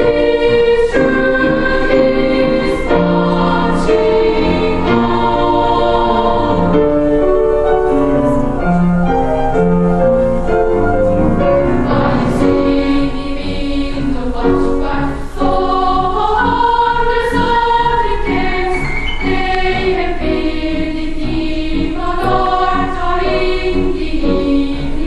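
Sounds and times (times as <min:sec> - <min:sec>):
children's choir singing: 0:00.0 - 0:25.0.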